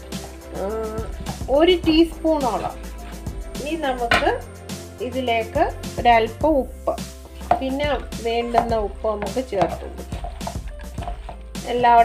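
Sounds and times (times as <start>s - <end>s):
background music: 0.0s - 12.0s
person talking: 11.6s - 12.0s.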